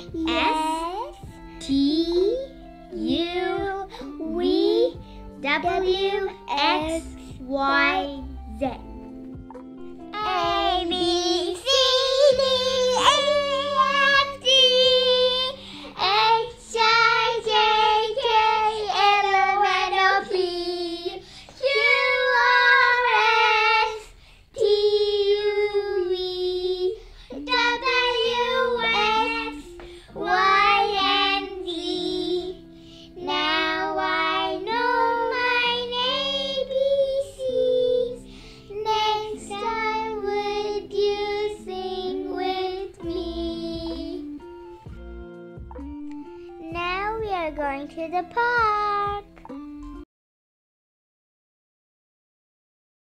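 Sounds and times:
child singing: 0:00.0 - 0:09.0, 0:10.1 - 0:44.4, 0:46.6 - 0:49.6
instrumental backing track: 0:00.0 - 0:23.7, 0:27.0 - 0:50.0.

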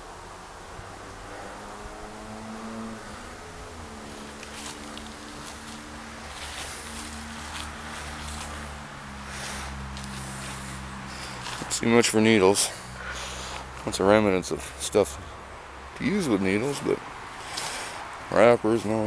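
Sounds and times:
engine hum: 0:00.0 - 0:19.0
footsteps on dry leaves: 0:03.9 - 0:11.8.

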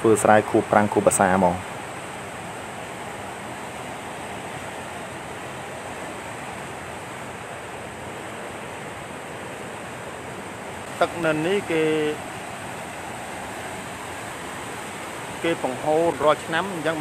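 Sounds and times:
water gushing from culvert: 0:00.0 - 0:17.0.

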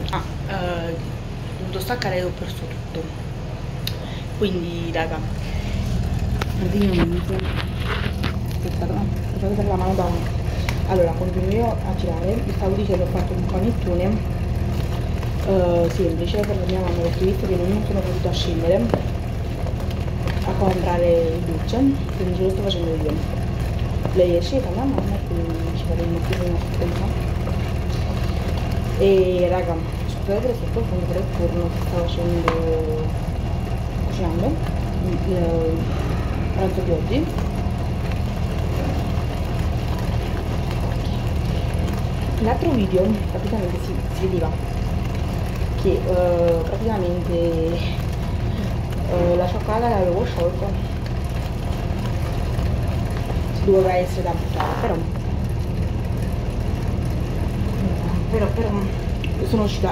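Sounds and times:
low mechanical hum: 0:00.0 - 0:59.9
motor rumbling: 0:00.0 - 0:59.9.

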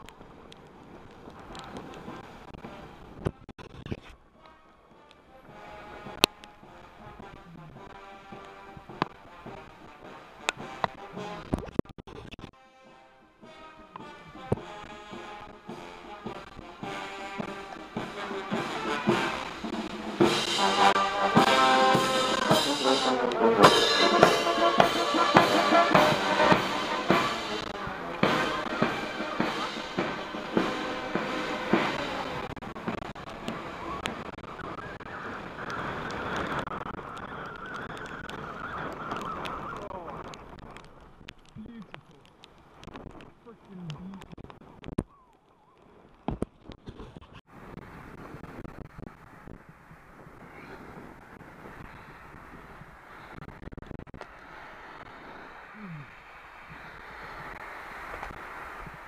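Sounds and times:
marching band brass and drums: 0:04.4 - 0:37.0.

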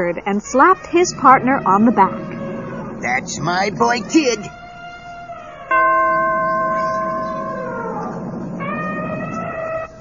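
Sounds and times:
bell-like chime ringing: 0:05.7 - 0:08.1.

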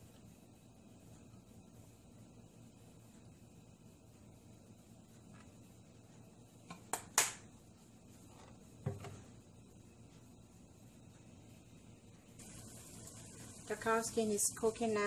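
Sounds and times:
faint steady hiss: 0:00.0 - 0:15.0.

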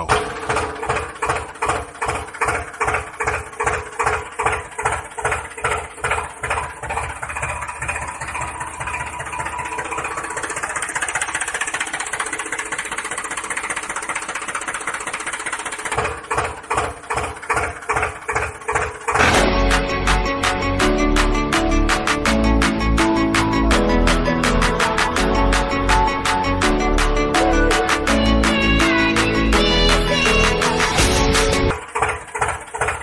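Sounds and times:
diesel tractor engine chugging: 0:00.0 - 0:33.0.

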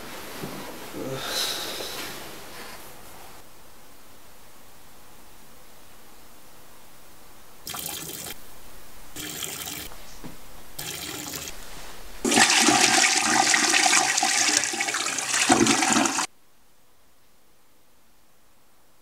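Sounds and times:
toilet flushing: 0:07.7 - 0:08.4, 0:09.2 - 0:09.9, 0:10.8 - 0:16.3.

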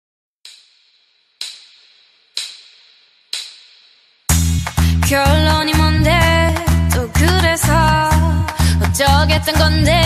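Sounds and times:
sharp snap-like percussion hits: 0:00.5 - 0:05.1.

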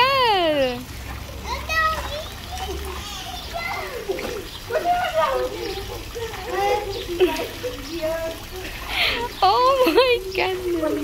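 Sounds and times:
voices talking: 0:00.0 - 0:11.0
water splashing in a pool: 0:00.0 - 0:11.0.

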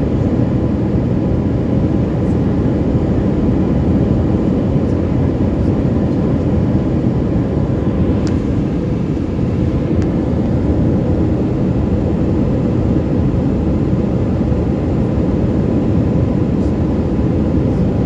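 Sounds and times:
jet engines and airflow rumble: 0:00.0 - 0:18.0.

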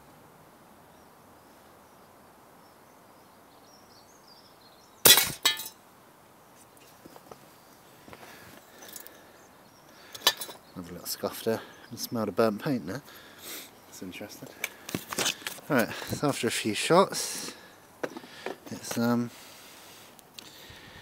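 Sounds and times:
metallic clatter of toy falling: 0:05.1 - 0:05.8.

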